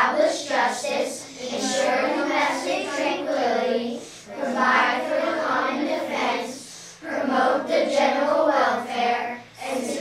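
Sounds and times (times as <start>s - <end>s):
children singing in unison: 0.0s - 10.0s.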